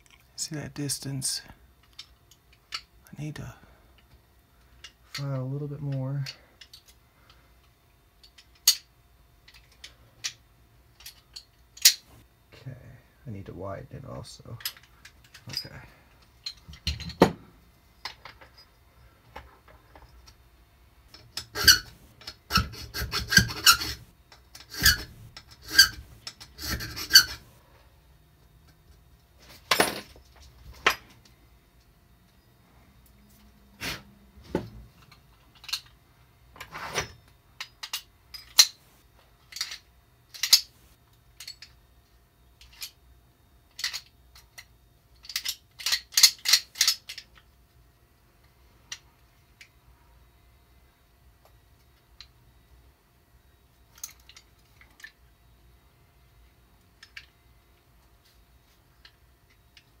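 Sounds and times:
file rasping on metal: 21.4 - 24.1, 24.7 - 27.5.

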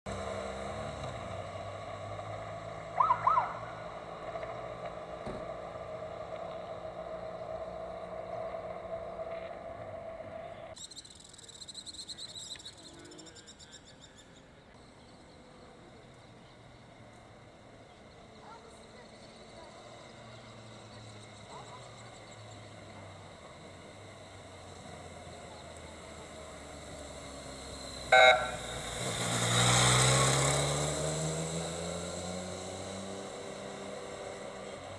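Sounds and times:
motorcycle engine riding off: 0.1 - 10.8, 18.4 - 34.9.

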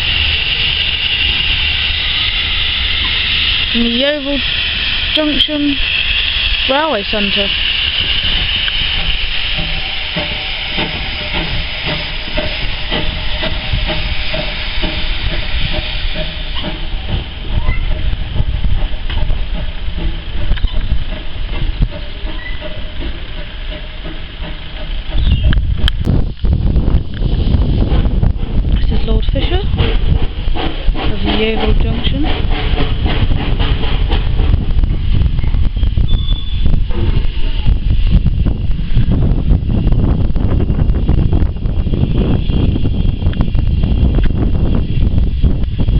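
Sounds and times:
deep rumble: 0.0 - 45.9
diesel train humming: 0.0 - 45.9
steam locomotive hissing: 0.0 - 45.9.

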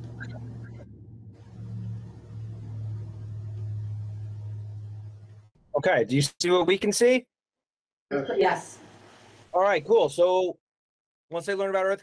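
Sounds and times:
steady low hum: 0.0 - 5.5.

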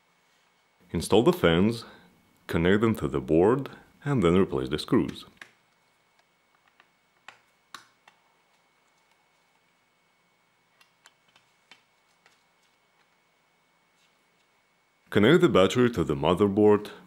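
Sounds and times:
faint clicks and taps: 5.0 - 9.7, 10.7 - 13.2.

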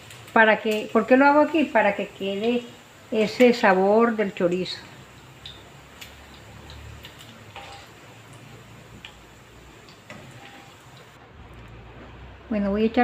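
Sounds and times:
sausage frying in oil: 0.0 - 13.0.

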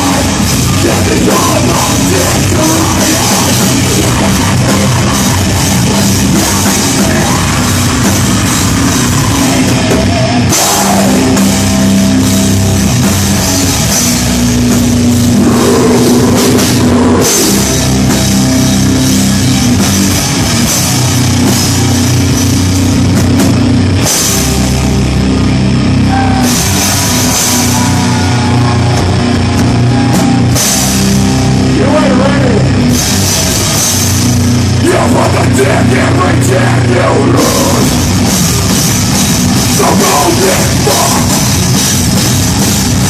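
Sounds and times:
singer's vocals: 0.0 - 8.1, 9.0 - 11.9, 31.7 - 32.8, 34.8 - 38.1, 39.7 - 41.6
heavy metal band playing: 0.0 - 43.0.

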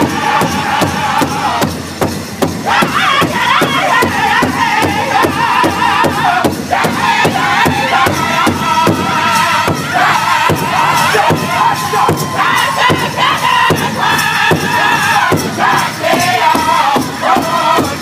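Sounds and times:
men singing in high unison: 0.0 - 1.8, 2.6 - 18.0
large drum steady beat: 0.0 - 18.0.

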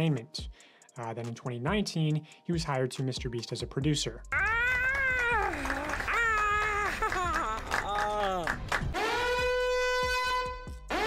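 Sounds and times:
young man screaming with excitement: 4.4 - 8.4.

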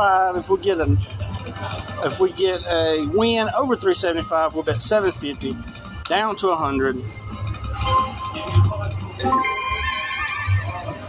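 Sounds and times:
slot machine spin music: 0.0 - 11.0.

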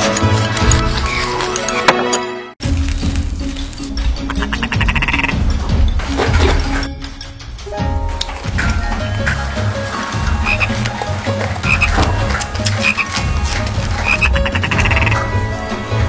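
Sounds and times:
low animal calls: 4.3 - 5.5, 13.9 - 15.4.

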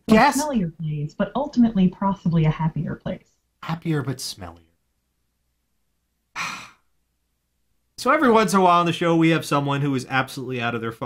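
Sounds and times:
person sighing: 6.4 - 6.8.

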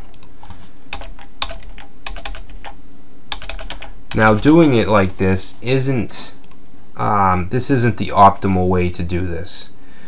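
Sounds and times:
steady low hum: 0.0 - 10.0
keyboard keys clicking: 0.9 - 4.5.

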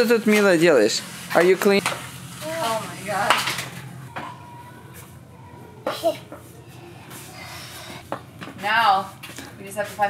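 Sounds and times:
child's high-pitched vocal sound: 4.1 - 8.0.

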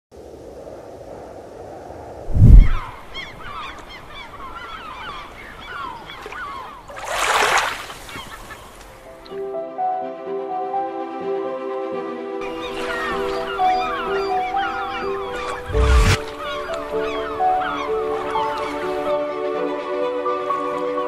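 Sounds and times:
loud whoosh: 2.3 - 2.9, 15.6 - 16.3
flock of birds calling: 2.7 - 9.0, 12.4 - 19.3
music with held notes: 16.6 - 21.0.

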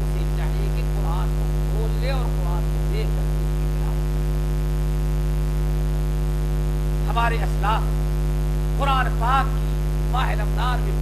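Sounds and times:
man speaking: 0.0 - 4.1, 7.0 - 8.0, 8.8 - 11.0
electrical mains hum: 0.0 - 11.0.

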